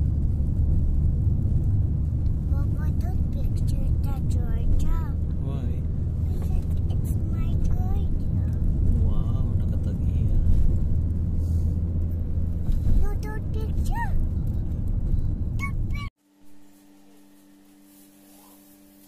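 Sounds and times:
car engine and tyres rumble: 0.0s - 16.2s.

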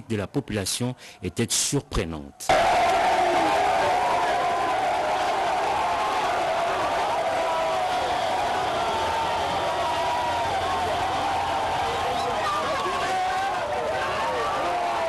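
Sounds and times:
crowd cheering and shouting: 2.5s - 15.0s.

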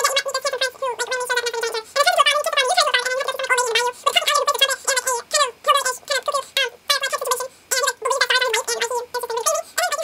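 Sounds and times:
person vocalising high warble: 0.0s - 10.0s.

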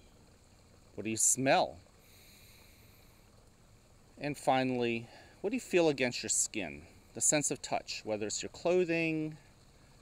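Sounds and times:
small waterfall fountain splashing: 0.0s - 10.0s.

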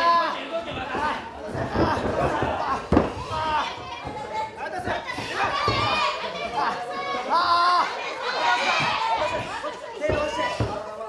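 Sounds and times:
crowd calling out: 0.0s - 10.8s.

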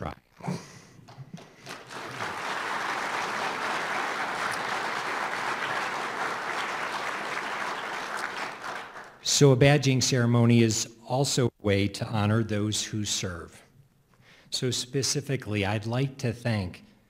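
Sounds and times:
audience applauding: 1.1s - 9.2s.

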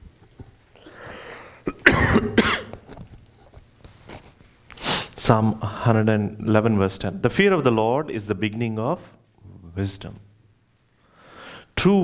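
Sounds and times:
breath in: 0.8s - 1.7s, 11.0s - 11.7s
man coughing: 1.6s - 2.8s.

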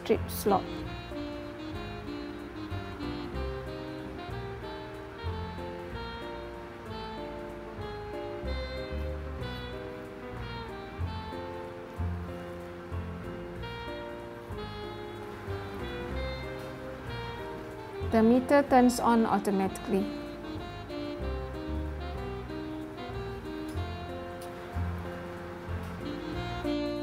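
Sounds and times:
instrumental background music: 0.0s - 27.0s.

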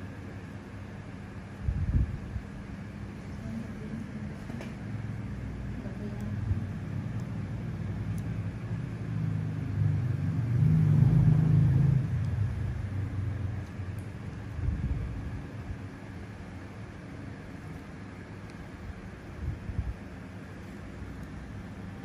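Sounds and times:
motor rumble with hum: 0.0s - 22.0s.

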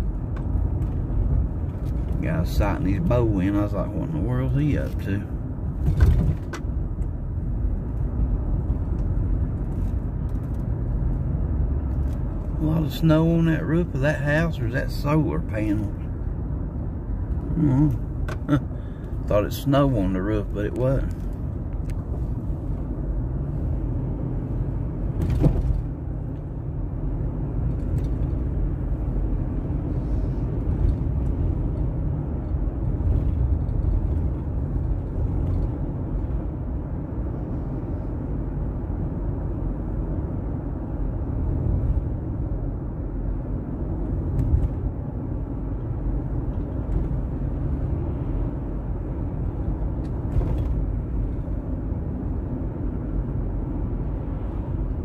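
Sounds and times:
road and engine noise in car: 0.0s - 55.0s.

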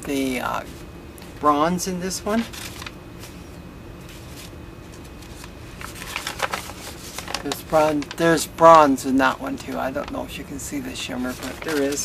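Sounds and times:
paper sheets rustling: 2.2s - 12.0s
crisp paper crackles: 2.3s - 3.4s, 4.1s - 12.0s.

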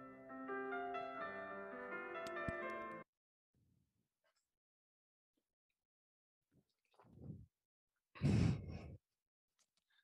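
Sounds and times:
breath blowing into microphone: 8.2s - 9.0s.

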